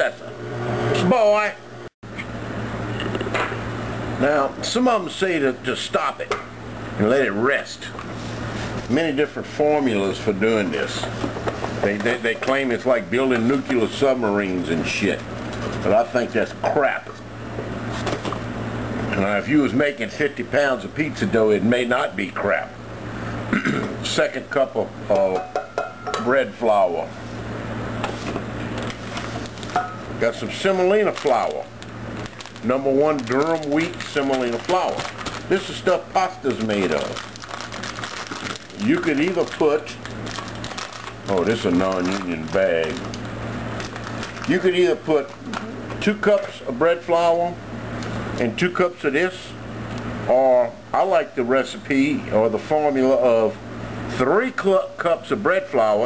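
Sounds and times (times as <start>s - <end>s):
steady low hum: 0.0s - 56.0s
paper bag rustling: 28.2s - 45.6s.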